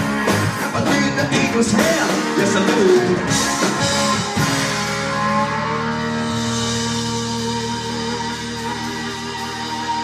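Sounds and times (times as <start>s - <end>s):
electric guitar and bass chord: 0.0s - 10.0s
low bass note: 3.3s - 10.0s.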